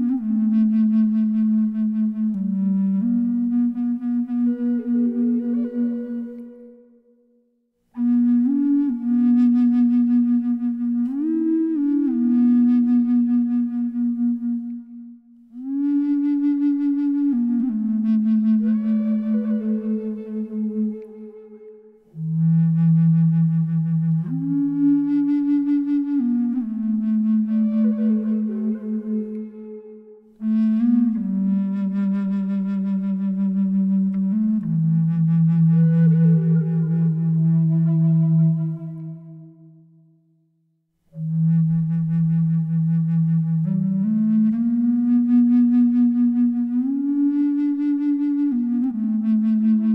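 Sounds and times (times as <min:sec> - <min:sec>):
slow low flute music: 0:00.0 - 0:49.9.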